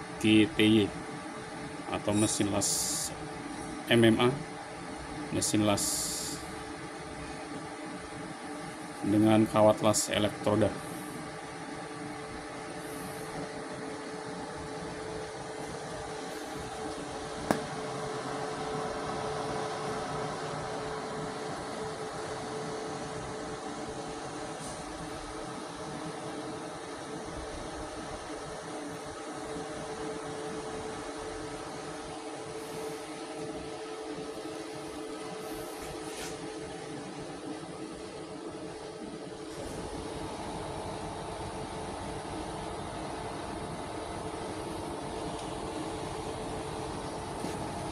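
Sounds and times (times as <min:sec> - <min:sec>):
constant tone: 0:00.0 - 0:47.9
welding machine fan humming: 0:00.0 - 0:47.9.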